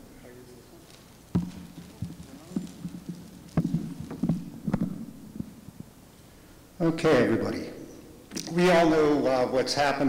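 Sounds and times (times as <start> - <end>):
faint low hum: 0.0 - 10.0
knocks and thumps: 1.3 - 5.9.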